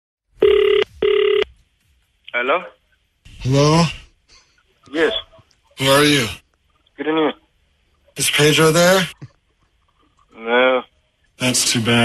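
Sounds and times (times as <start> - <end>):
telephone ringback tone: 0.4 - 1.5.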